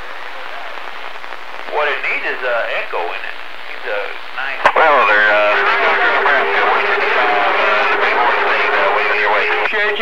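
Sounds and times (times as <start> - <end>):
voices over radio receiver: 0.0 - 10.0
steady low tone: 4.9 - 9.7.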